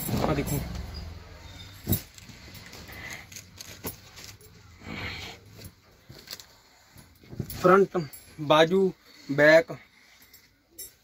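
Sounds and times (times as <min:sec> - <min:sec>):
cloth rustling: 0:00.0 - 0:11.0.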